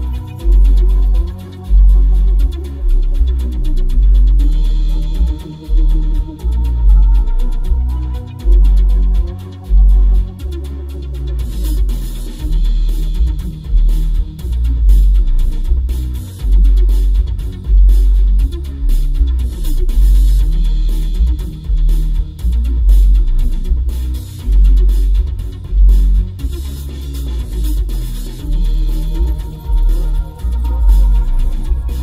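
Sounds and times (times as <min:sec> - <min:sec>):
deep bass notes pulsing: 0:00.0 - 0:32.0
music through car subwoofer: 0:00.0 - 0:32.0.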